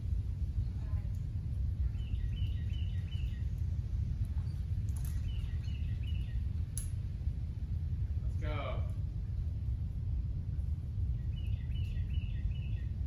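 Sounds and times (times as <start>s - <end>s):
low background rumble: 0.0s - 13.0s.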